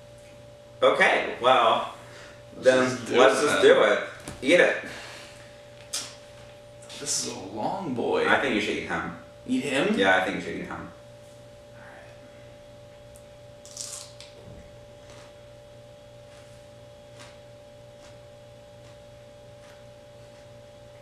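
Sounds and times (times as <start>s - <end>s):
low electrical hum: 0.0s - 21.0s
crunching of chewing: 13.6s - 14.4s.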